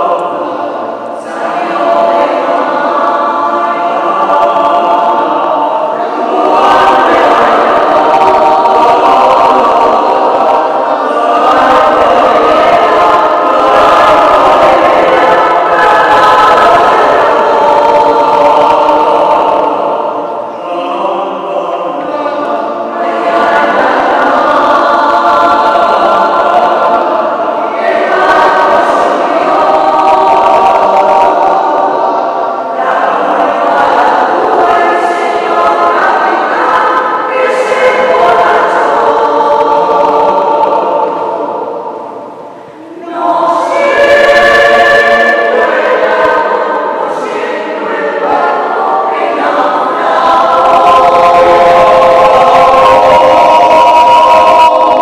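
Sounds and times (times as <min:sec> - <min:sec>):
mixed choir singing a cappella: 0:00.0 - 0:55.0.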